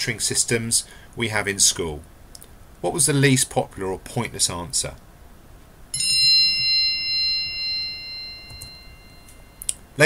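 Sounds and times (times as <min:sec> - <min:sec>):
bell-like chime: 0:05.9 - 0:09.6.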